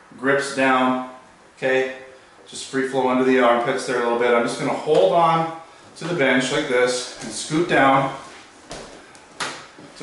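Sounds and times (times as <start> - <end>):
faint shuffling: 2.0 - 10.0.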